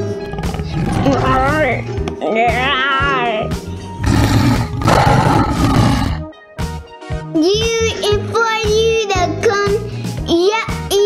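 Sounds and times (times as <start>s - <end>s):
children's background music: 0.0s - 11.0s
tiger roar: 0.2s - 1.6s, 4.0s - 6.2s.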